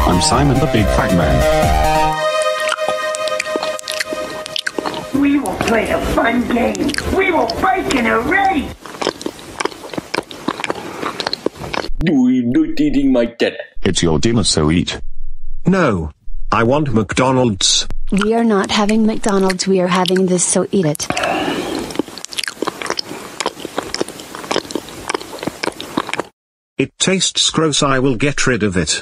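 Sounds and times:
crunching crackling clicks: 2.2s - 5.8s, 6.5s - 12.0s, 17.9s - 21.2s, 21.8s - 26.4s.

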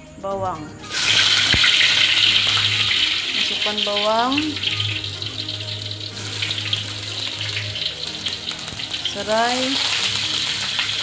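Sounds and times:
hot oil sizzling in a wok: 0.8s - 11.0s.

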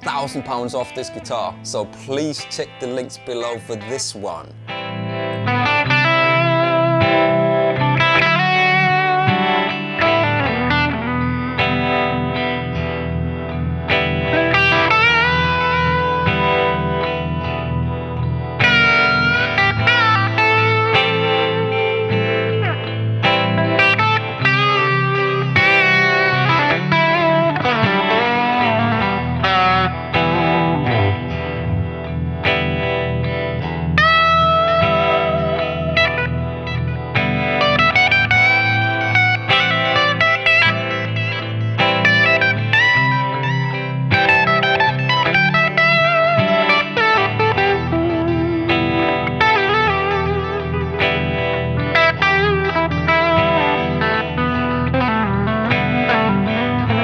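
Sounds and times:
electric guitar lead licks: 0.0s - 57.0s.

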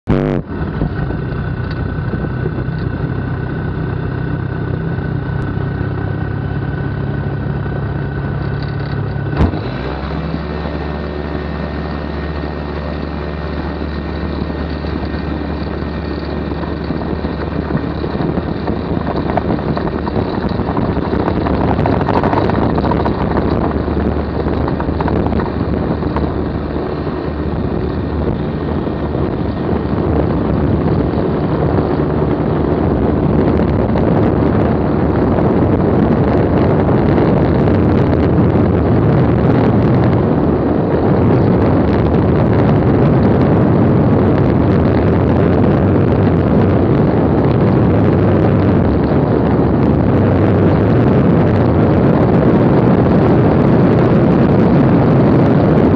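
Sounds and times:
propeller engine running: 0.0s - 55.9s
wind noise: 0.0s - 55.9s.

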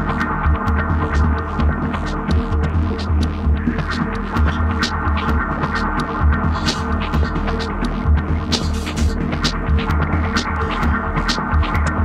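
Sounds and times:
throbbing low bass pulse: 0.0s - 12.0s.

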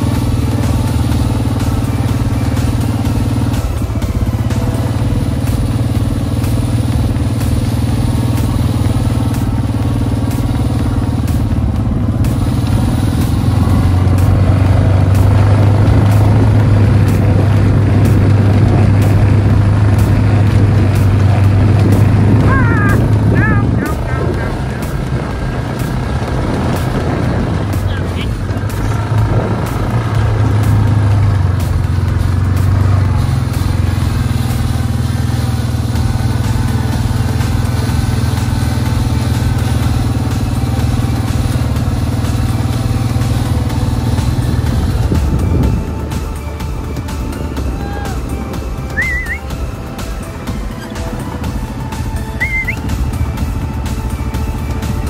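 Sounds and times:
vehicle engine humming: 0.0s - 55.0s
short rising calls: 47.7s - 51.3s, 51.9s - 53.3s.

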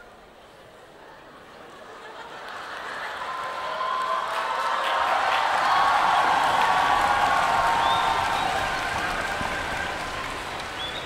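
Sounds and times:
audience applauding and cheering: 3.0s - 11.0s.

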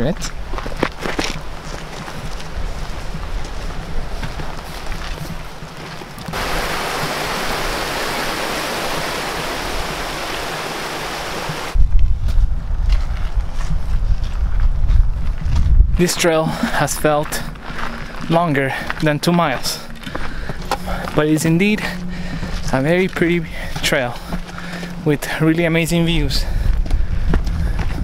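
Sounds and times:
wind rumbling on microphone: 0.0s - 18.3s, 25.7s - 28.0s
waterfall rushing: 6.3s - 11.8s.

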